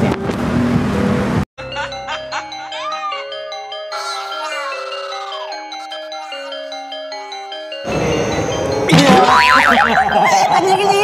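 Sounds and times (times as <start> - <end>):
springy cartoon boing: 8.9 - 10.2.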